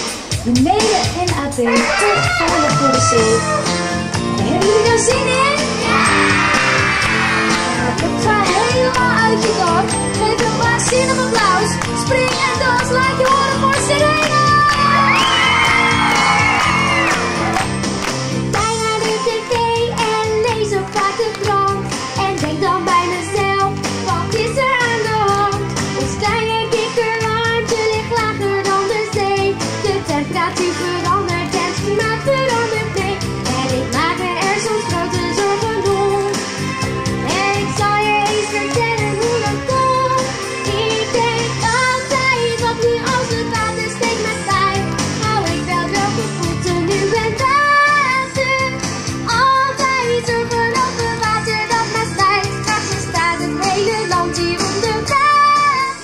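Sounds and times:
backing music: 0:00.0 - 0:56.0
woman singing: 0:04.4 - 0:05.6, 0:08.0 - 0:15.3, 0:18.5 - 0:36.4, 0:37.2 - 0:56.0.

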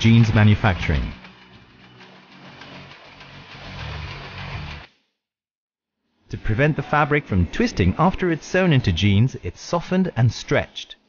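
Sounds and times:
textile machinery humming: 0:00.0 - 0:04.9.

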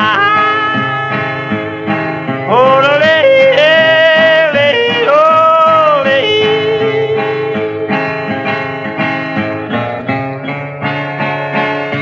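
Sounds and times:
man yodeling: 0:00.0 - 0:01.5, 0:02.5 - 0:07.8
strummed acoustic guitar: 0:00.0 - 0:12.0.

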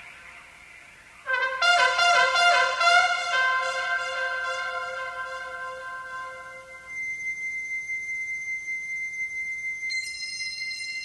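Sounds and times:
ambient music high tones: 0:00.0 - 0:11.0
high steady tone: 0:01.3 - 0:11.0.

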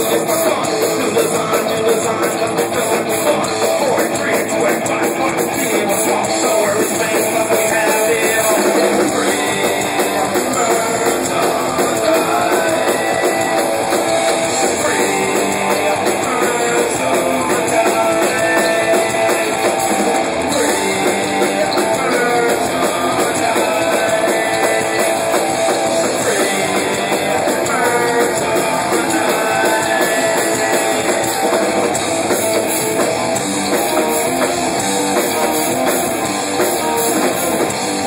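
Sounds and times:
person singing into microphone: 0:00.0 - 0:13.7, 0:14.4 - 0:31.8
drum kit: 0:00.0 - 0:38.0
electric guitar: 0:00.0 - 0:38.0.

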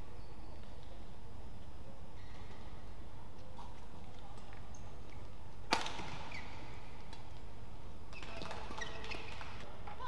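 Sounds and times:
arena noise: 0:00.0 - 0:10.0
shoe squeaking on court: 0:02.2 - 0:02.8, 0:05.8 - 0:06.8, 0:08.1 - 0:09.6
racket striking shuttlecock: 0:05.7 - 0:06.4.

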